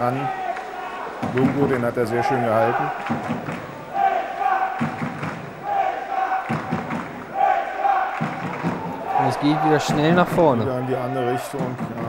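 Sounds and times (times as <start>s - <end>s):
spectators chanting in rhythm: 0.0s - 11.9s.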